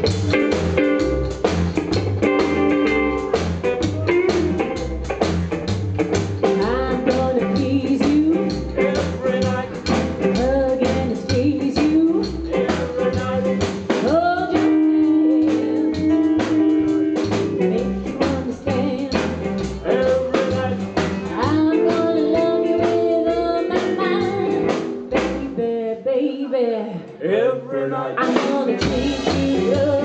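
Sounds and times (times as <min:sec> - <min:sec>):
drum kit beat: 0:00.0 - 0:25.7, 0:28.2 - 0:30.0
upright double bass: 0:00.0 - 0:25.7, 0:27.2 - 0:30.0
electric guitar: 0:00.0 - 0:25.8, 0:28.2 - 0:30.0.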